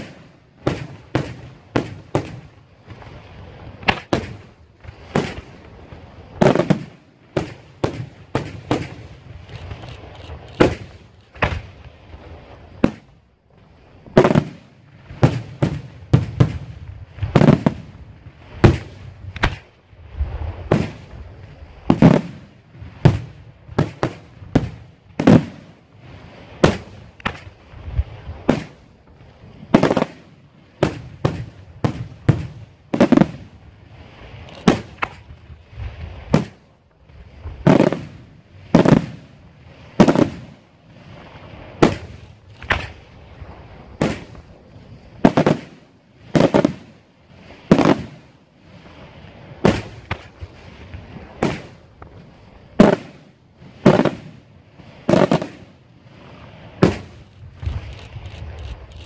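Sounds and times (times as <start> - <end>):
fireworks bursting with sharp bangs: 0.0 - 59.0.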